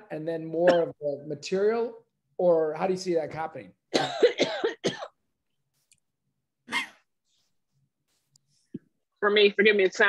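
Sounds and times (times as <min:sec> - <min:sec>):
person coughing: 0:04.0 - 0:05.2.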